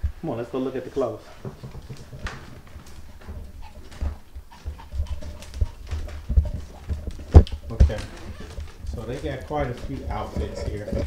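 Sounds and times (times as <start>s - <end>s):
low thumps: 0.0s - 11.0s
dog claws clicking on wood floor: 1.2s - 11.0s.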